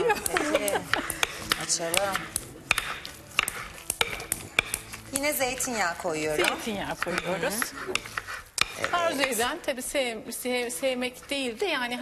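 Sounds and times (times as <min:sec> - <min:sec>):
potato masher mashing potatoes: 0:00.0 - 0:12.0.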